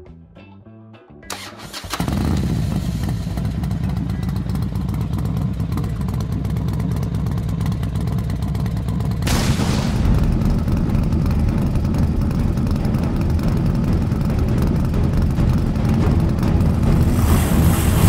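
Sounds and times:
engine starting clicks: 1.3s - 3.5s
motorcycle engine running: 1.3s - 18.0s.

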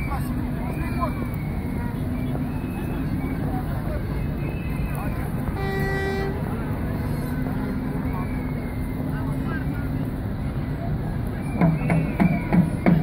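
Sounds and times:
crowd chatter: 0.0s - 13.0s
horn toot: 5.6s - 6.5s.

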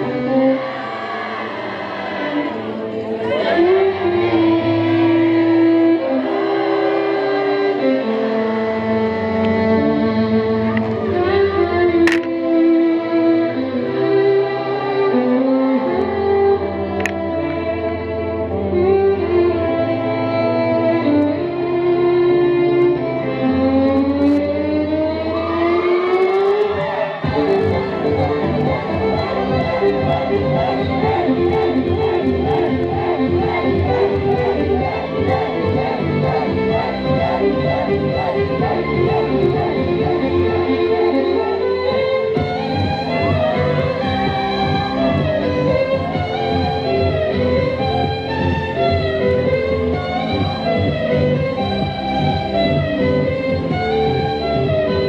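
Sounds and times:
electric violin melody: 0.0s - 55.0s
backing track with bass: 20.8s - 55.0s.

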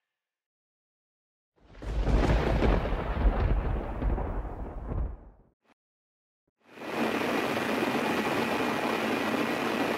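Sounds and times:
static-like rushing noise: 6.7s - 9.9s.

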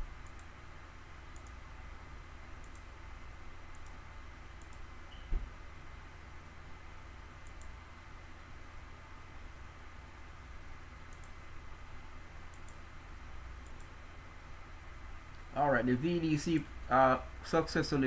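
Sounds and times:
low steady hum: 0.0s - 18.0s
computer mouse clicks: 0.2s - 0.5s, 1.3s - 1.6s, 2.6s - 2.9s, 3.7s - 4.0s, 4.6s - 5.2s, 7.4s - 7.8s, 11.1s - 11.4s, 12.5s - 12.8s, 13.6s - 14.0s.

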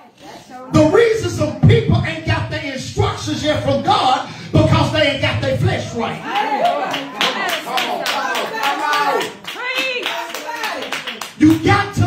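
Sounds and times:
man's voice through microphone: 0.7s - 6.3s, 11.4s - 12.0s
rhythmic hand clapping: 6.3s - 12.0s.

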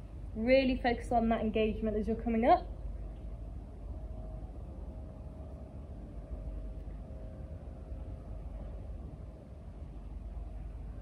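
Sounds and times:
faint even hum: 0.0s - 11.0s
steady low rumble: 0.0s - 11.0s.

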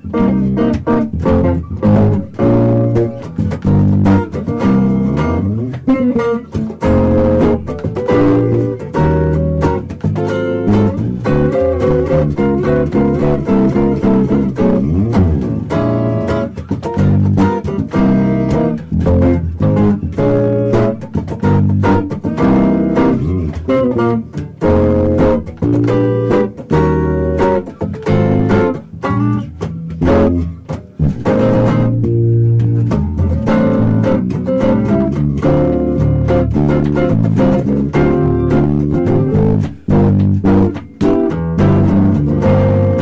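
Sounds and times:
electric guitar melody: 0.0s - 43.0s
walking bass line: 0.0s - 43.0s.

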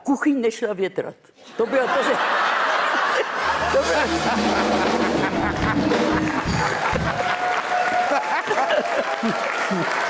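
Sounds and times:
audience laughing: 1.5s - 10.0s
audience applauding: 3.4s - 10.0s.

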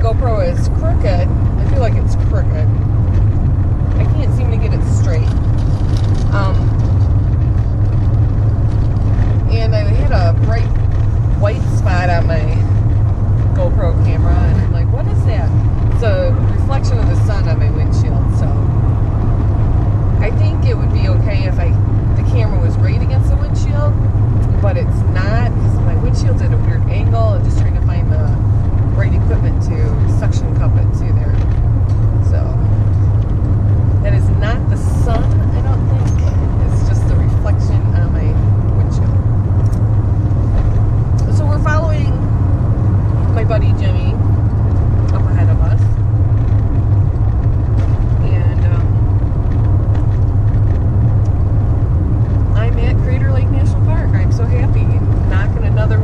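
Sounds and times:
van engine and tyres droning: 0.0s - 56.0s.

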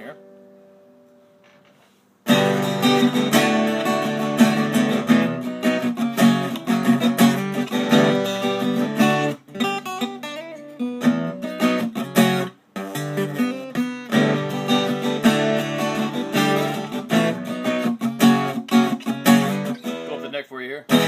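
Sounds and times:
acoustic guitar strumming chords: 2.2s - 21.0s.

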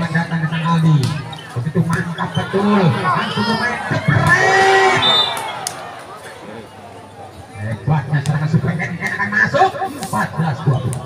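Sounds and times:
spectators cheering and shouting: 0.0s - 7.6s
murmur of voices: 0.0s - 11.0s.

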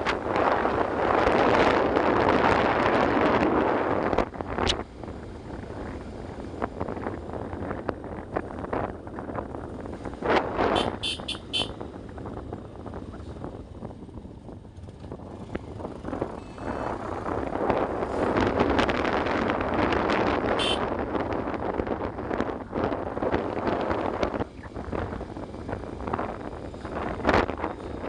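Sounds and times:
motorcycle engine rumble: 0.0s - 28.0s
horn beeps: 10.7s - 11.8s, 16.4s - 17.0s, 20.6s - 20.8s.

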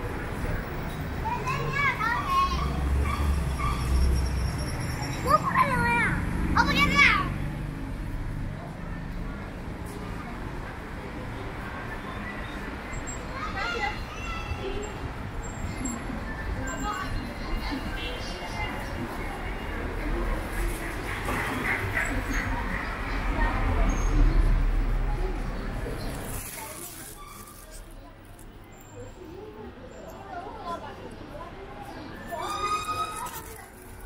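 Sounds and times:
traffic rumble: 0.0s - 34.0s.

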